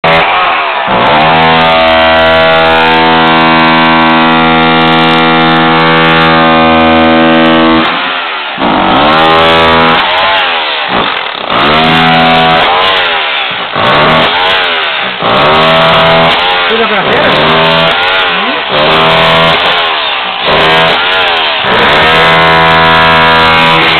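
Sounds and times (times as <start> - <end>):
demolition hammer chiselling concrete: 0.0 - 23.9.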